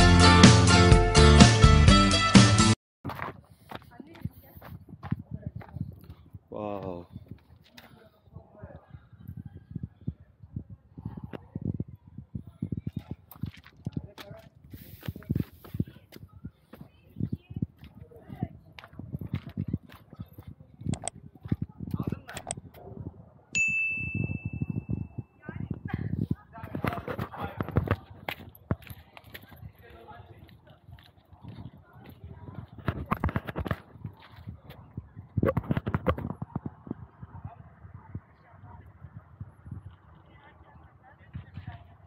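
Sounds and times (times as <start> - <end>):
footsteps on stone and rubble: 3.0 - 8.3, 12.4 - 22.8, 25.8 - 36.7.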